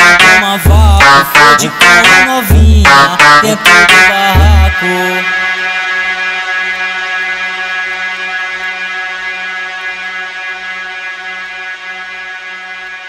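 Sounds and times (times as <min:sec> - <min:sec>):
held synthesizer note: 0:00.0 - 0:05.8.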